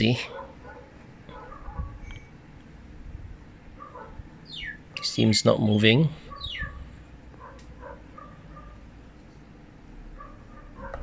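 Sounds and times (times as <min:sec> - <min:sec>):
quiet steady hum: 0:00.0 - 0:11.0
faint bird chirps: 0:03.8 - 0:05.2, 0:06.3 - 0:06.9.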